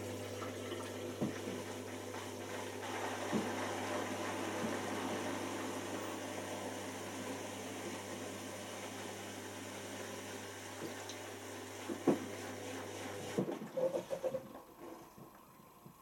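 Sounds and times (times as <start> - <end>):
washing machine motor humming: 0.0 - 16.0.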